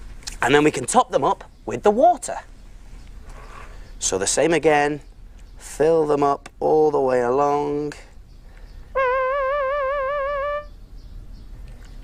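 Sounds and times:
held musical note with vibrato: 9.0s - 10.8s.

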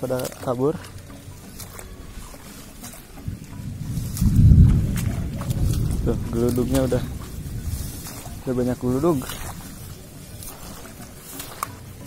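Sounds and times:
rolling thunder: 3.3s - 8.9s.

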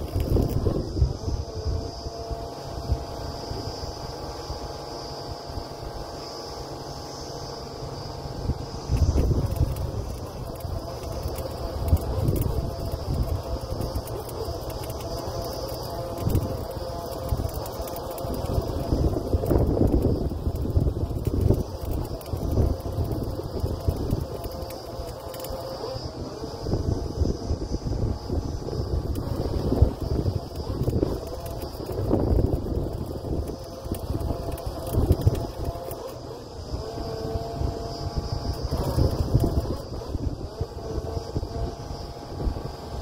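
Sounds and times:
wind buffeting microphone: 0.0s - 6.2s, 8.3s - 43.0s
drilling rig rumbling: 8.2s - 42.7s.

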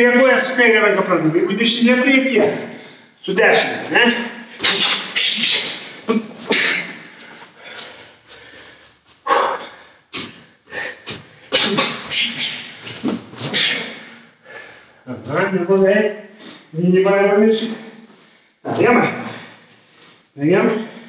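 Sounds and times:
man's voice: 0.0s - 7.2s, 15.0s - 19.6s, 20.4s - 21.0s.

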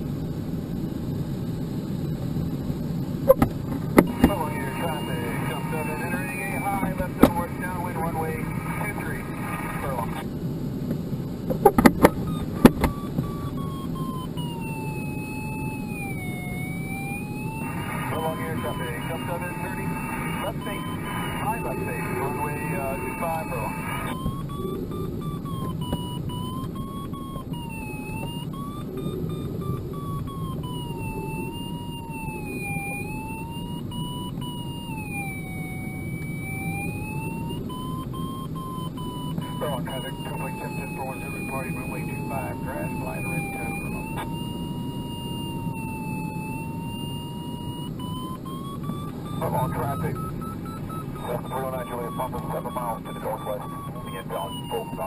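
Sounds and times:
variometer tone sliding in pitch: 4.1s - 10.2s, 12.0s - 55.0s.

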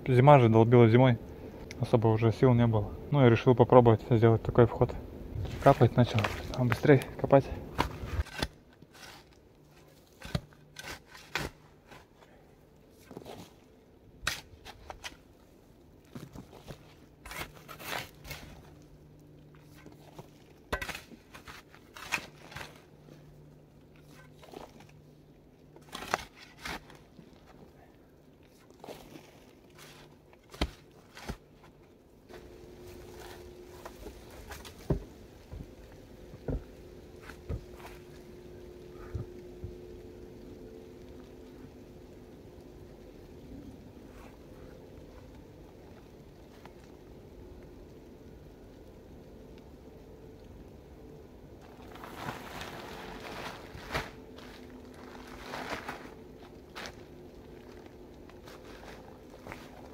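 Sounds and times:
faint steady hum: 0.0s - 59.9s
shovel digging into soil: 7.7s - 12.1s, 14.2s - 15.2s, 16.7s - 18.7s, 19.8s - 22.9s, 25.8s - 27.0s.

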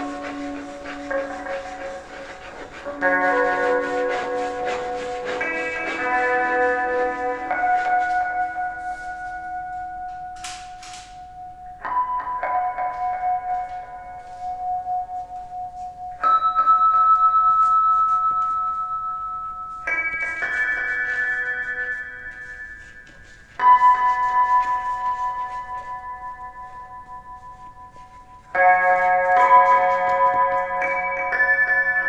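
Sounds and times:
electric guitar bell-like chords: 0.0s - 32.0s.

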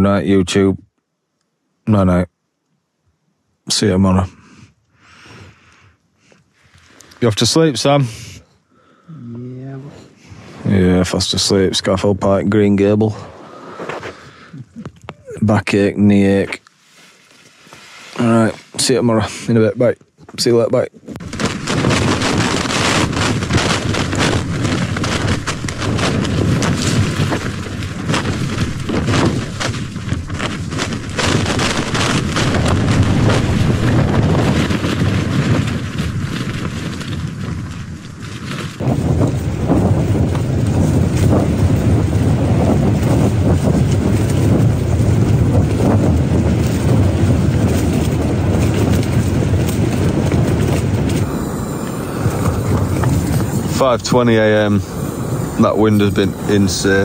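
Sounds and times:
gusting wind on tent: 9.2s - 57.0s
tent fabric flapping: 15.5s - 19.3s, 21.0s - 57.0s.

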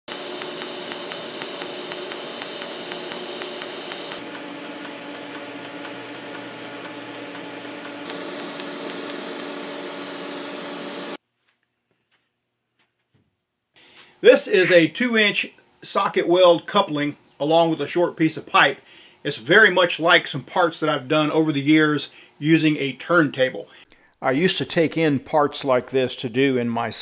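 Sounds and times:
welding arc hiss and buzz: 0.1s - 11.2s.

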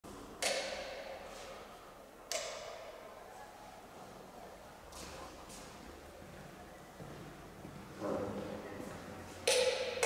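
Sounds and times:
sharp knocks with ringing echo: 0.4s - 1.2s, 2.3s - 3.0s, 9.4s - 10.0s.

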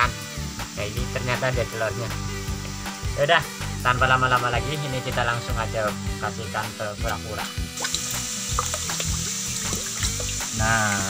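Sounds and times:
background music with bass line: 0.0s - 11.0s
water splashing and churning: 7.8s - 10.6s.

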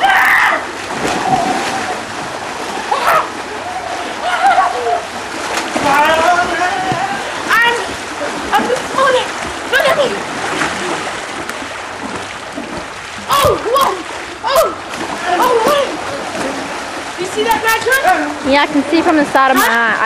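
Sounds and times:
people shouting: 0.0s - 5.2s, 5.8s - 7.9s, 13.3s - 16.2s
water splashing in pool: 0.0s - 20.0s.

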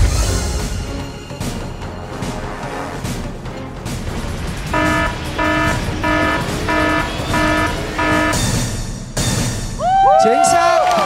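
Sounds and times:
background music: 0.0s - 11.0s
short electronic beeps: 4.8s - 8.5s.

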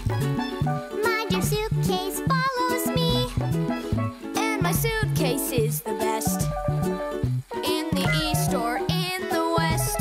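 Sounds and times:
upbeat children's song: 0.0s - 10.0s.

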